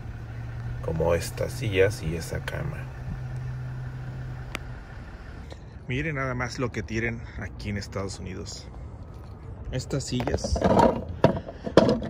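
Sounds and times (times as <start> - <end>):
car engine idling: 0.0 - 6.6.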